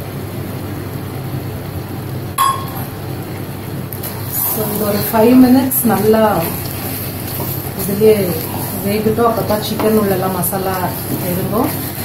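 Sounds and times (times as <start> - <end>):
low background hum: 0.0 - 12.0
steel cup clinking on pan rim: 2.4 - 2.9.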